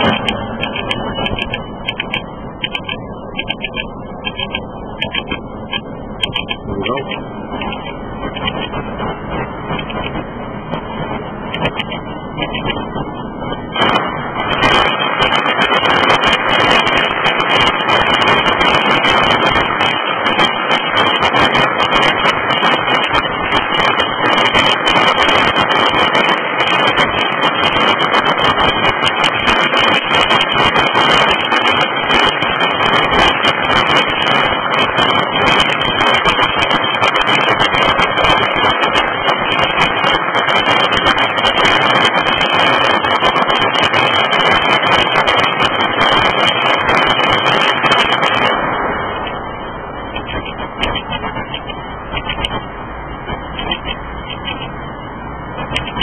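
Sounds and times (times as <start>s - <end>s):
firecrackers crackling: 0.0s - 56.0s.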